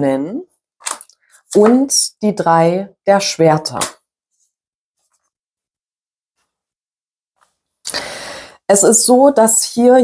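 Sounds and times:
person speaking: 1.5s - 3.9s.

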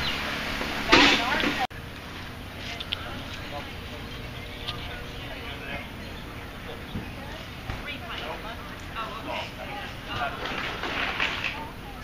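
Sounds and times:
indistinct talking: 0.0s - 12.0s
low outdoor rumble: 0.0s - 12.0s.

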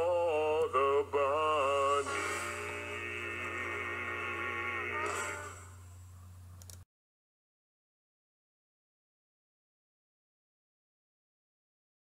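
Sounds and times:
man singing: 0.0s - 5.5s
music: 0.0s - 5.9s
steady low hum: 0.0s - 6.8s.

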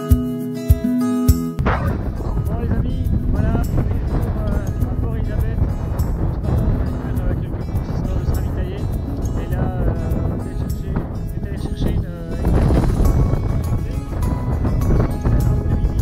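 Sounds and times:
background music: 0.0s - 16.0s
man talking: 1.6s - 16.0s
wind buffeting microphone: 1.6s - 16.0s.

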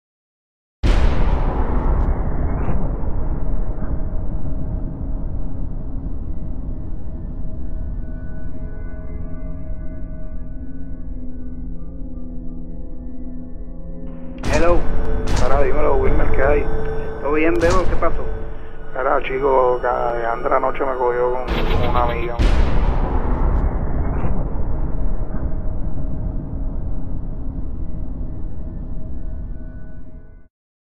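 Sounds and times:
cinematic boom rumble: 0.8s - 8.1s, 14.1s - 29.0s
faint steady tone: 14.5s - 22.4s.

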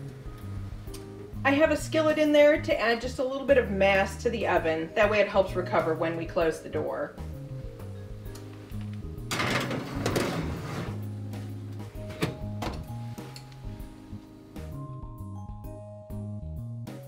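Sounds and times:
background music: 0.0s - 17.0s
metal pan scraping on oven rack: 9.3s - 11.1s
oven door knocks: 12.0s - 12.9s.

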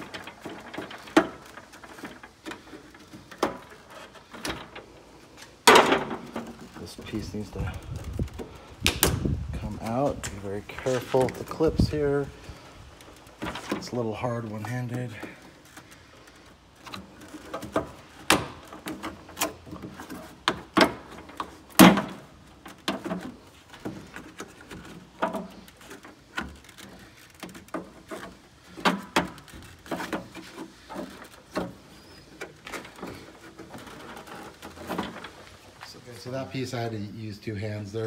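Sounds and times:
plastic trim scraping rustle: 0.0s - 36.6s.

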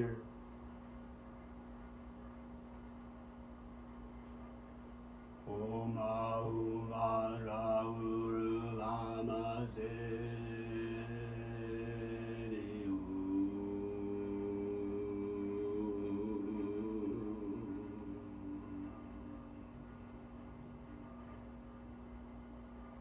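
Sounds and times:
voice chanting low drone: 0.0s - 0.3s, 5.5s - 21.3s
steady drone: 5.4s - 23.0s.

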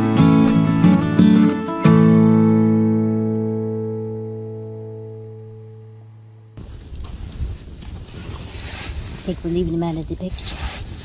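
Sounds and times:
campfire burning: 6.5s - 11.0s
wind rumbling on microphone: 6.6s - 11.0s.

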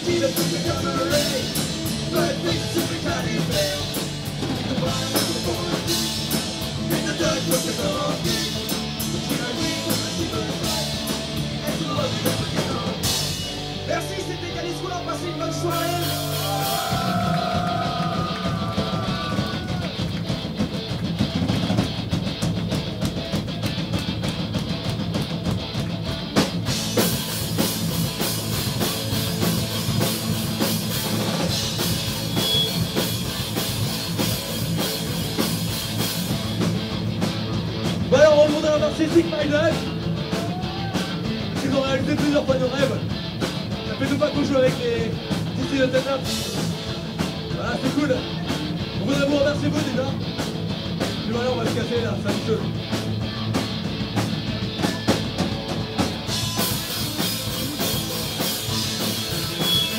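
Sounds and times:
punk rock band playing live: 0.0s - 59.9s.

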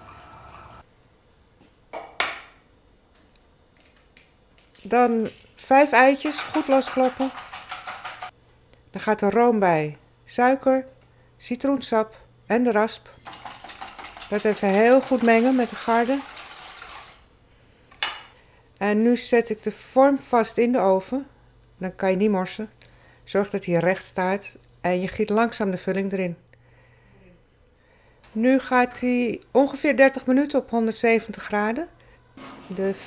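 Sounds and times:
whisk swishing liquid in bowl: 6.1s - 8.3s, 13.2s - 17.2s.

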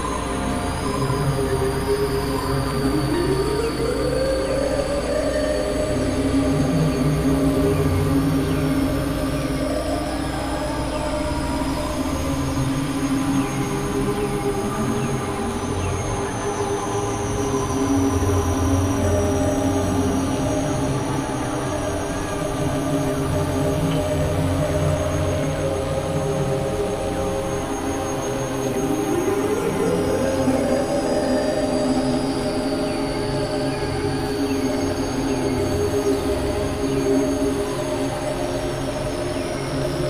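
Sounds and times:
electronic drone music: 0.0s - 40.0s.

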